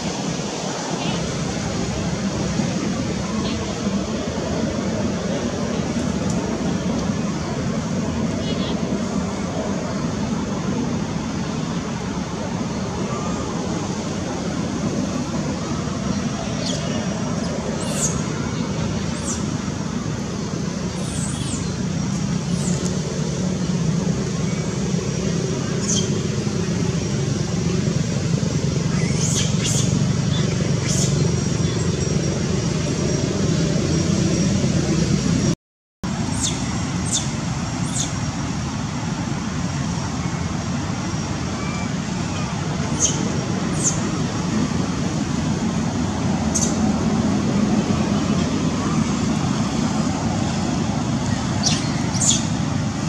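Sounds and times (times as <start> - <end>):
low outdoor rumble: 0.0 - 53.0.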